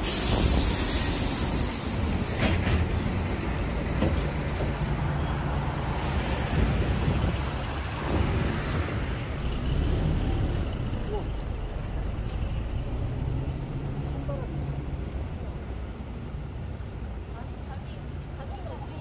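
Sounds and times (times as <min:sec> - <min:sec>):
vehicle engines humming: 0:00.0 - 0:19.0.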